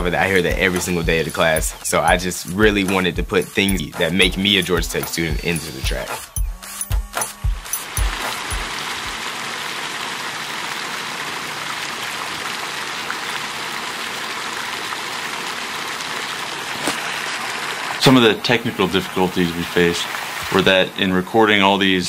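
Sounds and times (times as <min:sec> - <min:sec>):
music beats: 0:00.0 - 0:09.2
fountain water splashing: 0:07.8 - 0:22.0.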